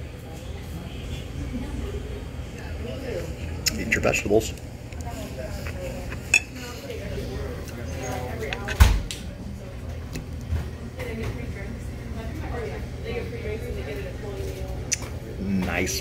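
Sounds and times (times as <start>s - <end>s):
murmur of voices: 0.0s - 16.0s
fork clinking on plate: 6.2s - 6.6s.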